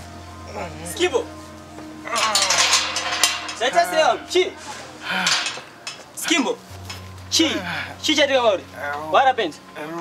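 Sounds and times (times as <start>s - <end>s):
metal gate clinking and rattling: 2.0s - 7.1s.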